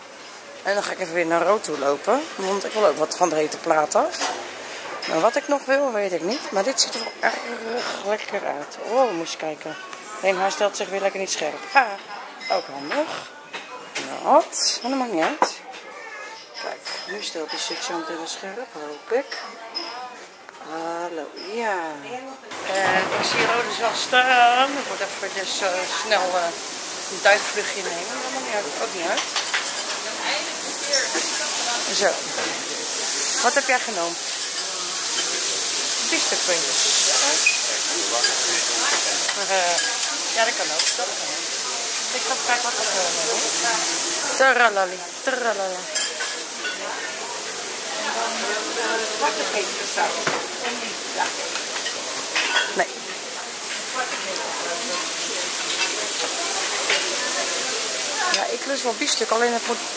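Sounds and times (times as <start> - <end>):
food sizzling on griddle: 0.0 - 9.3, 22.5 - 59.9
chatter of diners: 0.0 - 59.9
voices: 5.0 - 59.9.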